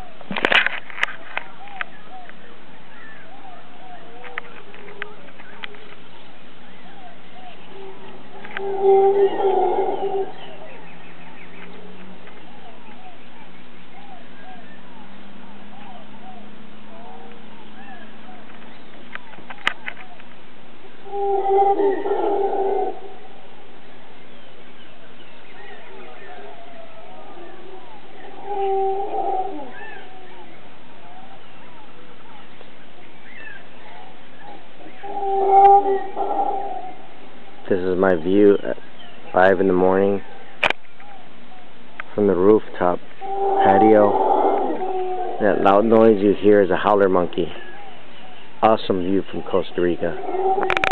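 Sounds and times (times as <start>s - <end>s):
bird calls: 0.0s - 50.9s
birdsong twittering: 1.0s - 50.9s
monkey roaring: 7.7s - 10.7s, 21.0s - 23.2s, 25.9s - 30.2s, 34.9s - 37.0s, 43.2s - 46.4s, 50.0s - 50.9s.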